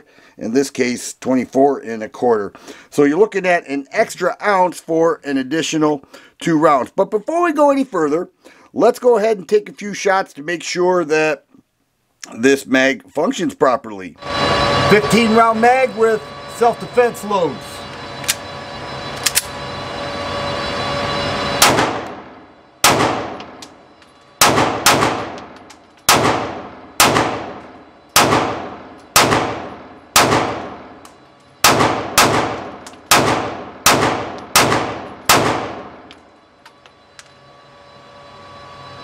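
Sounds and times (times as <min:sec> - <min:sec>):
pistol shots echoing indoors: 0:21.6 - 0:22.1, 0:22.8 - 0:23.6, 0:24.4 - 0:30.8, 0:31.6 - 0:36.0.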